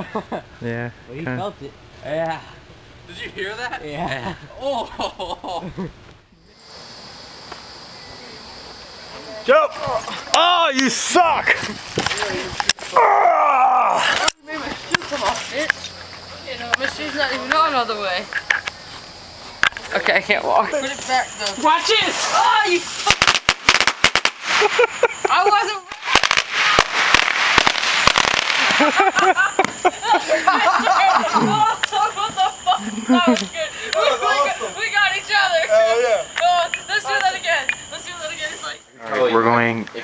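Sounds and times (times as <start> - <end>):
insects buzzing: 3.0 - 40.0
firecrackers popping: 11.5 - 13.0, 20.9 - 30.1, 31.8 - 32.7.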